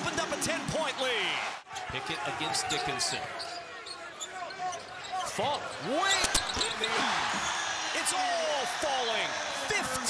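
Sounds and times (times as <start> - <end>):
sneaker squeaks: 2.6 - 7.1.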